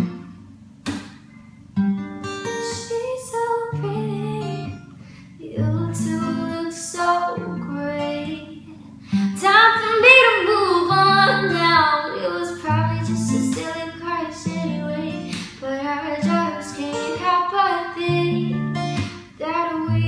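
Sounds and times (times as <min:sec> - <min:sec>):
acoustic guitar chords: 0:00.0 - 0:20.0
girl singing: 0:02.5 - 0:04.8, 0:05.4 - 0:20.0.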